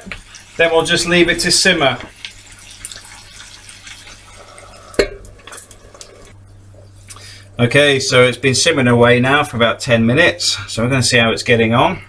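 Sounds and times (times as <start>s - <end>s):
liquid simmering in a pan: 0.0s - 7.1s.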